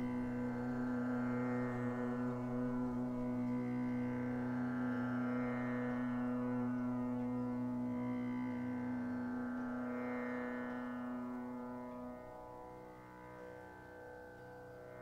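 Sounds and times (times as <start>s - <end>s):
sustained musical drone: 0.0s - 15.0s.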